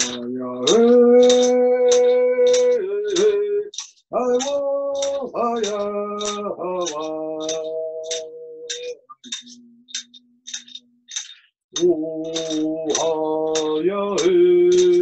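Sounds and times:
man singing long notes: 0:00.0 - 0:09.0, 0:11.8 - 0:15.0
steady sharp ticks: 0:00.0 - 0:15.0.

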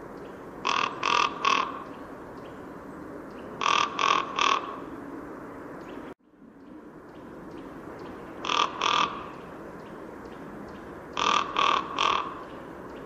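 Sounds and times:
crow cawing: 0:00.6 - 0:02.0, 0:03.6 - 0:04.9, 0:08.4 - 0:09.5, 0:11.2 - 0:12.6.

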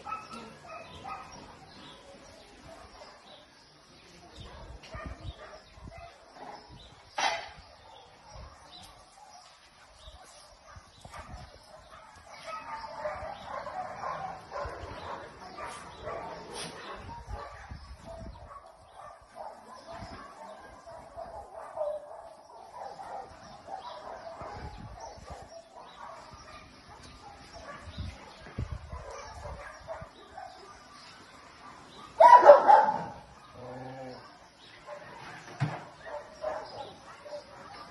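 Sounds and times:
dogs barking: 0:00.0 - 0:03.5, 0:04.4 - 0:37.9.

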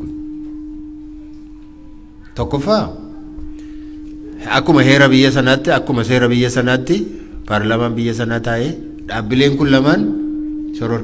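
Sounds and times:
public address system tone: 0:00.0 - 0:11.0.

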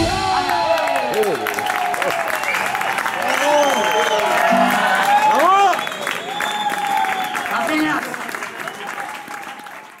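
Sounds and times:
audience applauding and cheering: 0:00.0 - 0:10.0
shouted whoops: 0:00.2 - 0:07.6.

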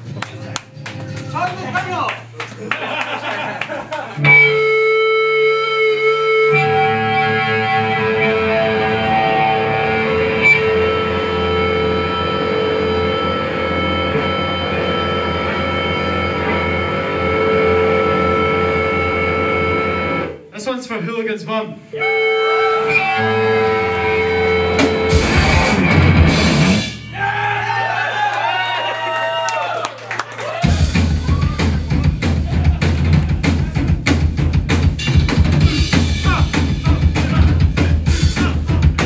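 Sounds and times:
distorted electric guitar and bass chord: 0:04.2 - 0:20.4, 0:22.0 - 0:27.2.

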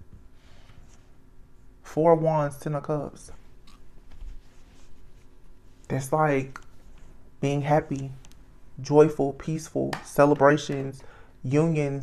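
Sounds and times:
faint rustling and scratching: 0:03.3 - 0:07.2.

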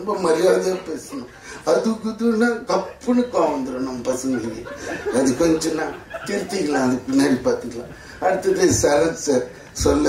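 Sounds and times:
man talking into a microphone: 0:00.0 - 0:10.0.

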